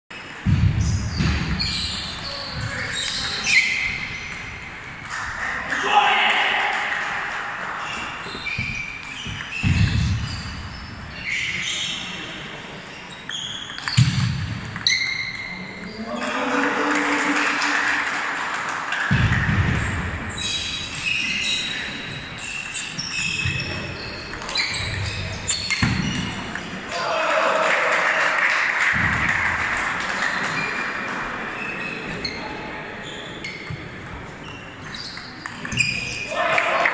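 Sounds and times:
voices of players: 0:00.4 - 0:36.9
hall noise and voices: 0:02.2 - 0:08.1, 0:15.3 - 0:20.2.

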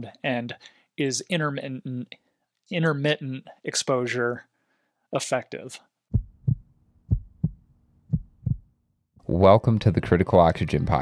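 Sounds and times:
heartbeat double thumps: 0:06.1 - 0:08.7.

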